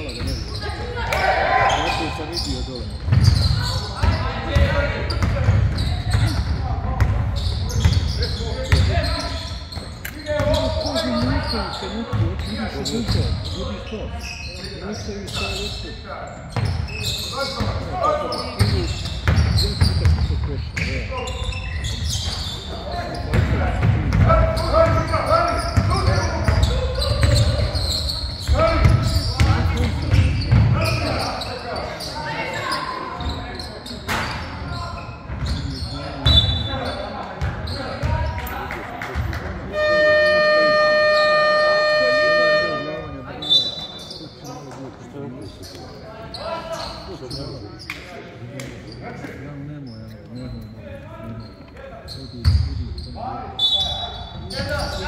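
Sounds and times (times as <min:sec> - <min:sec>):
players and coaches voices: 0:00.0 - 0:55.0
scoreboard buzzer: 0:39.7 - 0:43.1.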